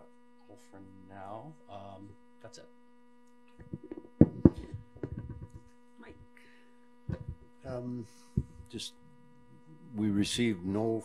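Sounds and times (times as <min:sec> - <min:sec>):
electrical mains hum: 0:00.0 - 0:11.0
soft low knocks: 0:03.6 - 0:05.6.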